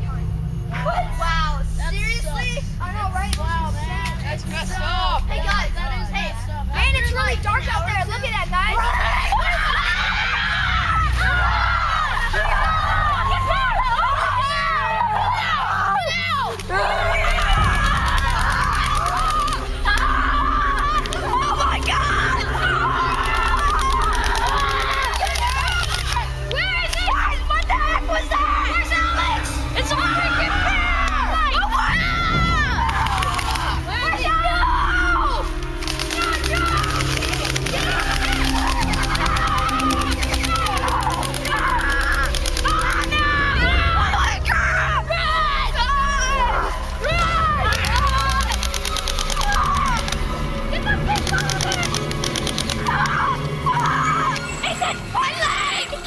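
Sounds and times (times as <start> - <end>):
boys talking and shouting: 0.0 - 56.0.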